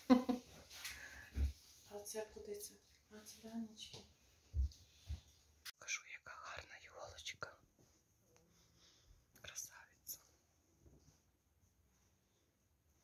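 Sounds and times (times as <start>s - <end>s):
person whispering: 5.8s - 7.6s, 9.4s - 10.3s.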